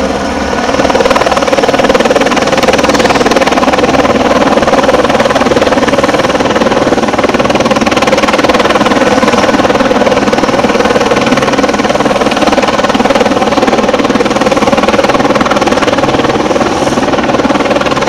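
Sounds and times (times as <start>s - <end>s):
helicopter flying low overhead: 0.0s - 18.0s.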